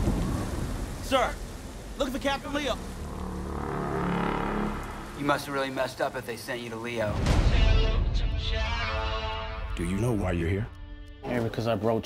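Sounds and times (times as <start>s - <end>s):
steady rain: 0.0s - 8.1s
low drone: 2.8s - 5.8s.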